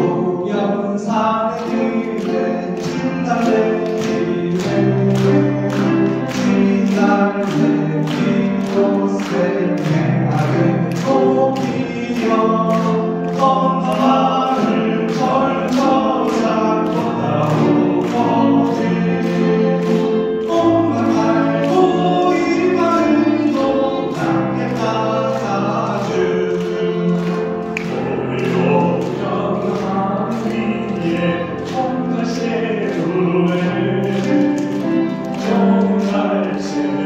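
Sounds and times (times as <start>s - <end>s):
voices singing: 0.0s - 37.0s.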